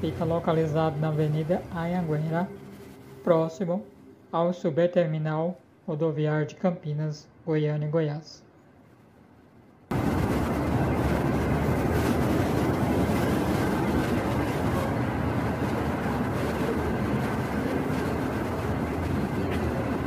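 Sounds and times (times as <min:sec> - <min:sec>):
bus engines and traffic rumble: 0:00.0 - 0:04.2, 0:09.9 - 0:20.0.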